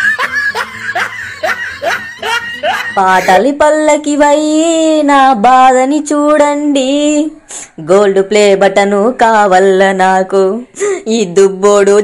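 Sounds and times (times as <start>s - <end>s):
person laughing: 0.0s - 3.5s.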